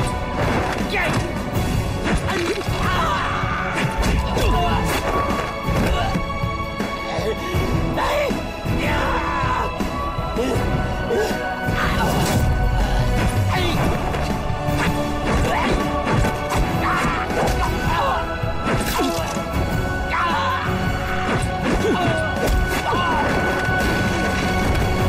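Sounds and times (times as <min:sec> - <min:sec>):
dramatic fight music: 0:00.0 - 0:25.0.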